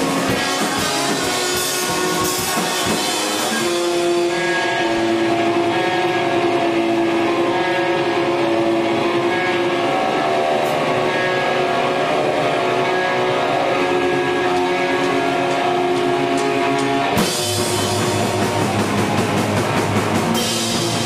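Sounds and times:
drumming: 0:00.0 - 0:07.6, 0:13.8 - 0:21.0
distorted electric guitar chords: 0:00.0 - 0:21.0.

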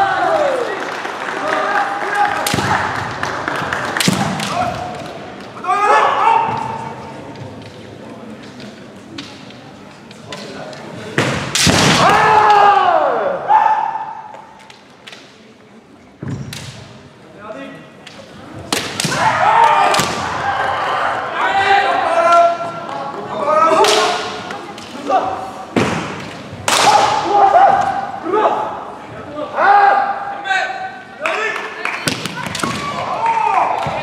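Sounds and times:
loud shouts: 0:00.0 - 0:00.8, 0:05.6 - 0:06.8, 0:11.9 - 0:14.3, 0:19.0 - 0:22.8, 0:26.7 - 0:28.8, 0:29.4 - 0:34.0
bamboo swords striking: 0:11.2 - 0:12.6, 0:25.8 - 0:27.3.

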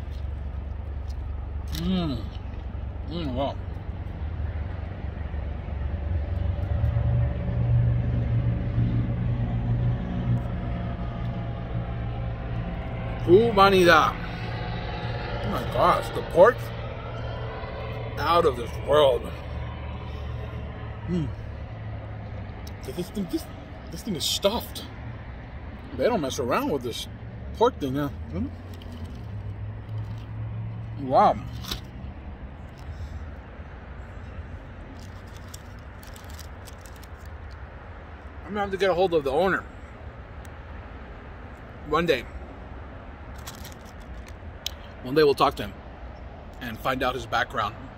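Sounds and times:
car engine rumble: 0:00.0 - 0:47.9
outdoor noise: 0:00.0 - 0:47.9.

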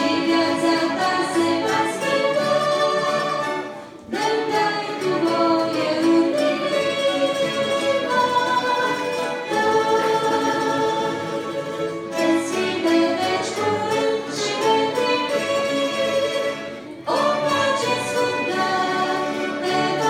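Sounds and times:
small orchestra playing chords: 0:00.0 - 0:20.0.

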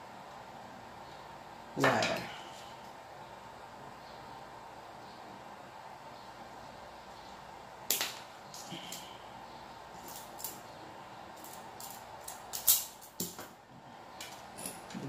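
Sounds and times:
faint steady hiss: 0:00.0 - 0:15.0
hand tools clicking and snapping: 0:11.4 - 0:13.4.

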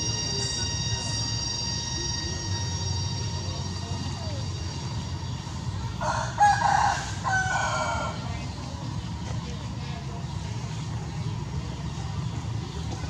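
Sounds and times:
rooster crowing: 0:06.0 - 0:08.2.

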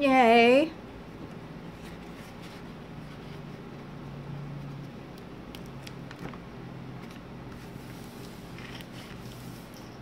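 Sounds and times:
low background hum: 0:00.0 - 0:10.0
plastic crinkles and ticks: 0:05.0 - 0:07.6.

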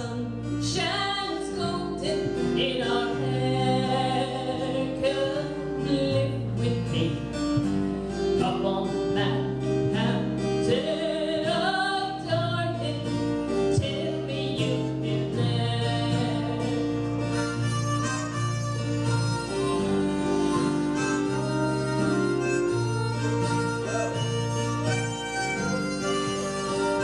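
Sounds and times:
acoustic guitar playing: 0:00.0 - 0:27.0
harmonica: 0:00.0 - 0:27.0.

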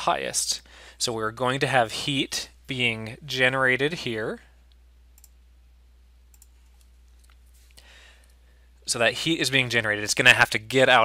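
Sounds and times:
low steady hum: 0:00.0 - 0:11.0
faint computer mouse clicks: 0:04.7 - 0:05.4, 0:06.3 - 0:07.5.

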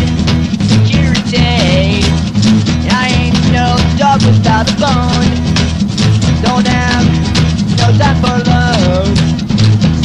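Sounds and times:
punk rock band playing: 0:00.0 - 0:10.0.

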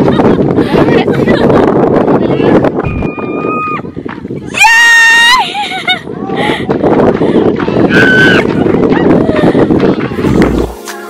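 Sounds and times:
wind rumbling on microphone: 0:00.0 - 0:10.8.

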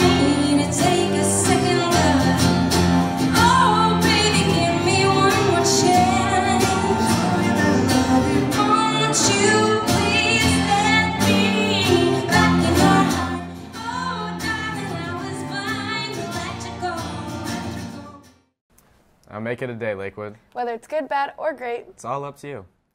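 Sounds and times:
woman singing: 0:00.0 - 0:02.6, 0:03.2 - 0:18.2
acoustic guitar and cello: 0:00.0 - 0:18.2.

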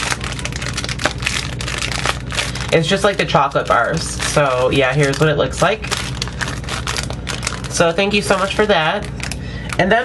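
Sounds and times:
squishy toy crackling in plastic bag: 0:00.0 - 0:10.0.

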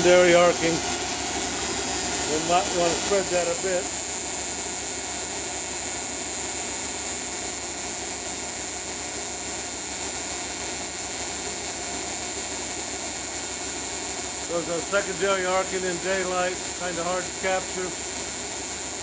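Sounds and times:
tesla coil arc hissing and buzzing: 0:00.0 - 0:19.0.

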